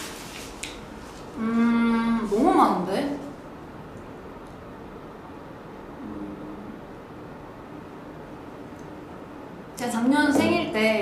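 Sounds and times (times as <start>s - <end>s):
woman humming: 1.4s - 2.3s, 6.0s - 6.7s.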